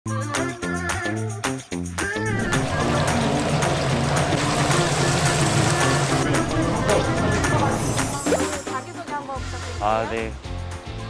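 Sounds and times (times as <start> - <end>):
background music: 0.1 - 11.0
oil sizzling in a fryer: 2.3 - 8.8.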